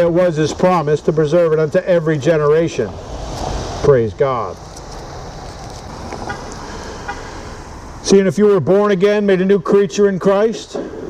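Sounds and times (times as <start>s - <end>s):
street traffic: 0.0s - 11.0s
car driving past: 2.7s - 8.1s.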